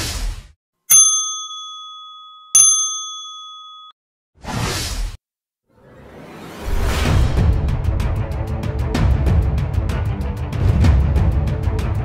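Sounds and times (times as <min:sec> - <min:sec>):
bell-like dings: 0:00.9 - 0:04.0
whoosh effect: 0:05.7 - 0:08.2.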